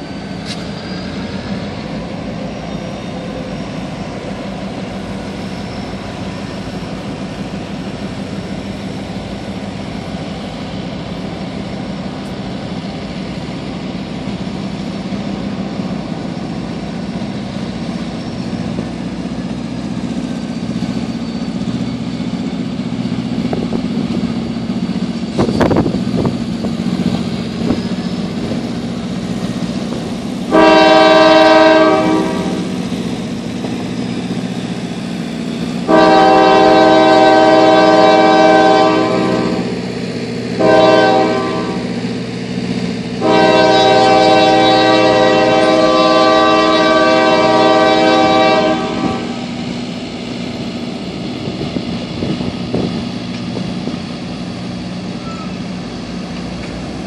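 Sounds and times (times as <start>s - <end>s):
locomotive air horn blasts: 30.5s - 32.8s, 35.9s - 39.8s, 40.6s - 41.9s, 43.2s - 49.5s.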